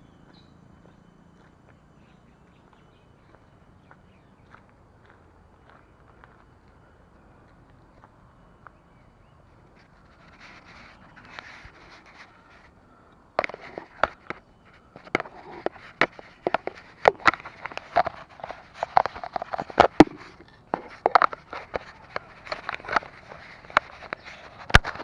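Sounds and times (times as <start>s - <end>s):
bicycle rattling over rough path: 13.4s - 25.0s
sharp knocks and clicks: 15.0s - 25.0s.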